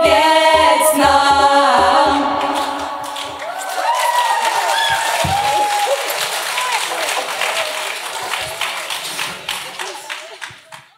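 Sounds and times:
cheering voices: 0:02.2 - 0:10.9
audience applause: 0:02.4 - 0:10.9.

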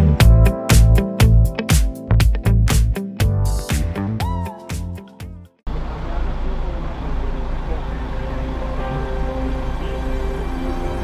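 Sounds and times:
traffic rumble: 0:05.7 - 0:11.0.

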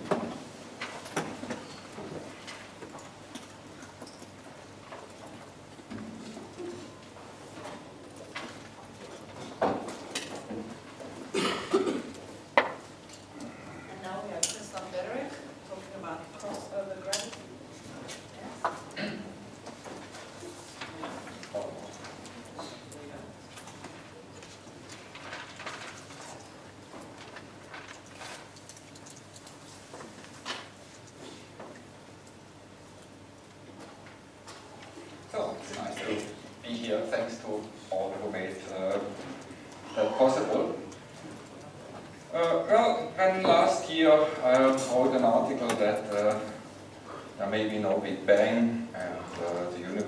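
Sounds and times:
person coughing: 0:11.3 - 0:12.2, 0:19.0 - 0:19.3.

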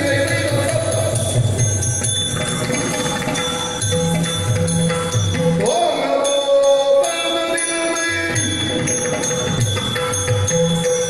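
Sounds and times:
ankle bells jingling: 0:00.0 - 0:11.0
hand cymbals ringing: 0:00.0 - 0:11.0.

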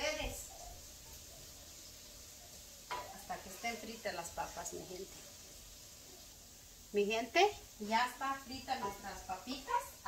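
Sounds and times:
potatoes sizzling in oil: 0:00.0 - 0:10.0.

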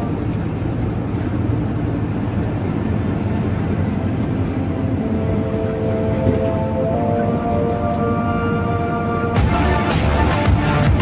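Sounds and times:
vehicle cabin road rumble: 0:00.0 - 0:11.0
music: 0:04.6 - 0:11.0.

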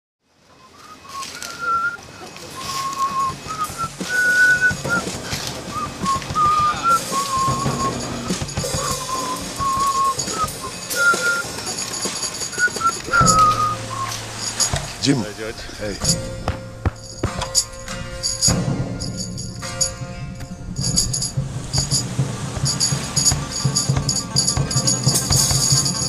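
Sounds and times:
faint high ringing: 0:00.5 - 0:26.0
person whistling a melody: 0:00.6 - 0:14.6.

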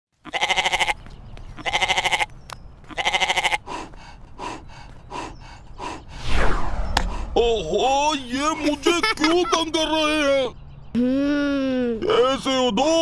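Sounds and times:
goat bleating: 0:00.2 - 0:03.7.

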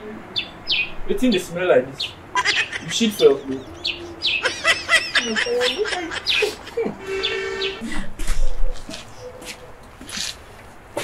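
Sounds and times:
birds chirping: 0:00.0 - 0:08.0.

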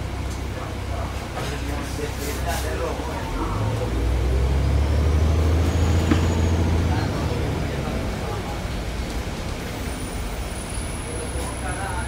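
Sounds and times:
bus diesel engine drone: 0:00.0 - 0:12.0.

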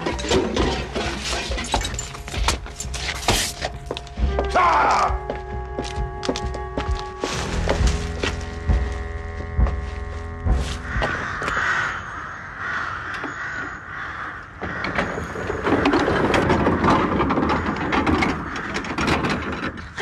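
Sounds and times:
held musical chord: 0:03.9 - 0:11.4
crows cawing: 0:10.5 - 0:15.6, 0:16.6 - 0:19.8.

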